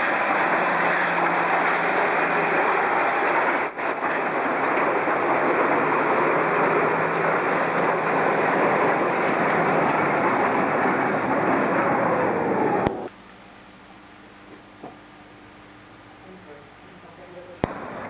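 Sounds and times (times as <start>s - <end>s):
train running: 0.0s - 13.1s, 16.3s - 18.0s.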